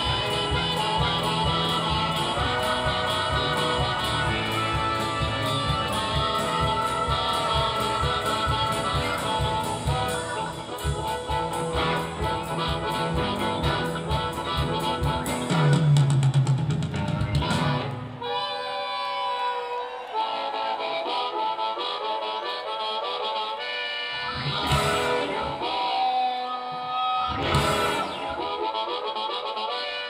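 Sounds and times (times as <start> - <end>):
harmonica bending notes: 0.0 - 16.2, 17.2 - 30.0
live band playing: 0.0 - 30.0.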